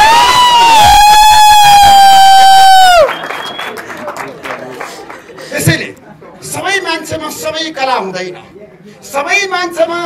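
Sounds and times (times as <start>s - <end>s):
people clapping: 0.0s - 5.8s
crowd noise: 0.0s - 10.0s.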